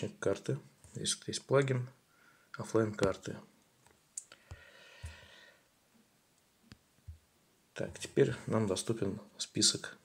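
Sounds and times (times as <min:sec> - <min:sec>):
soft hiss: 0:00.0 - 0:10.0.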